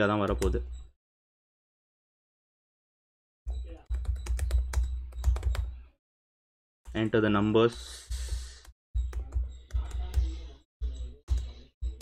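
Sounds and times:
keyboard typing: 0:00.2 - 0:00.7, 0:03.5 - 0:05.9, 0:06.9 - 0:12.0.

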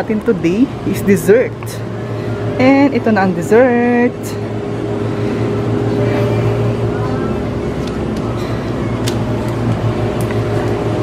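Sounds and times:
refrigerated case humming: 0:00.0 - 0:11.0.

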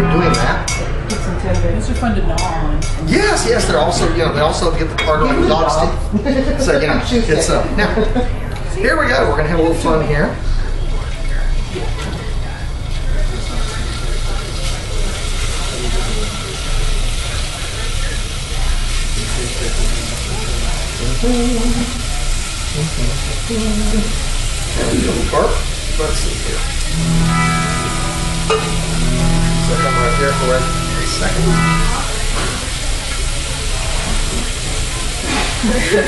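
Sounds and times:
plucked guitar music: 0:00.0 - 0:01.4, 0:26.9 - 0:33.1
beef sizzling in a skillet: 0:12.8 - 0:36.0.

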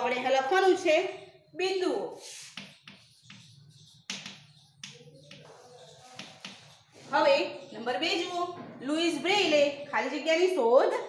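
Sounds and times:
chalk scratching: 0:02.0 - 0:08.4
chalk tapping on chalkboard: 0:02.0 - 0:08.5.

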